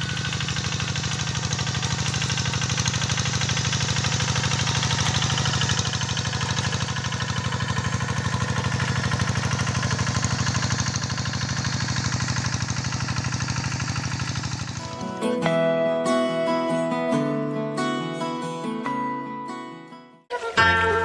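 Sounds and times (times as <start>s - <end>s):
diesel tractor engine running: 0.0s - 16.8s.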